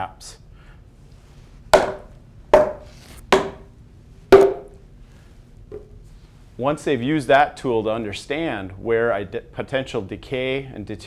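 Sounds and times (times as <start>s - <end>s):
hammer striking wood: 1.8s - 3.7s, 4.3s - 4.8s.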